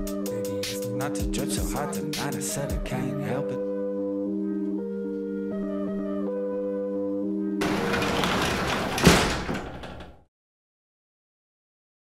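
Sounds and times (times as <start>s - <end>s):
metal garage door slamming: 7.6s - 10.2s.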